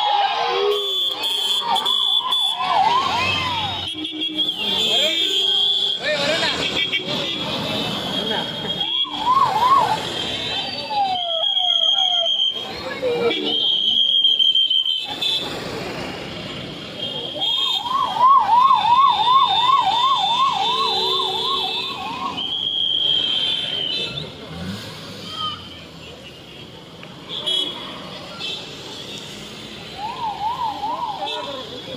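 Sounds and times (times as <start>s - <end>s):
noisy crowd: 0.0s - 31.9s
high steady whistle-like tones: 8.4s - 15.1s, 17.2s - 24.0s.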